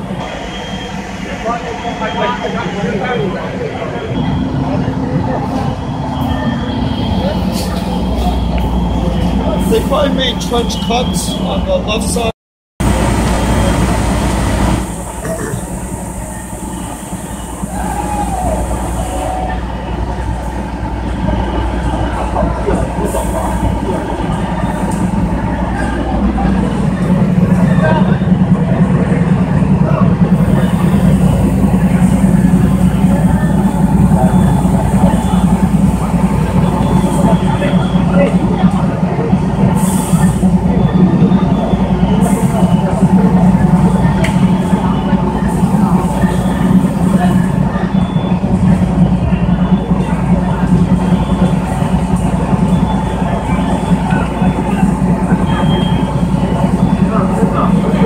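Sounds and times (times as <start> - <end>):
fire truck engine droning: 0.0 - 58.0
indistinct voices: 0.0 - 58.0.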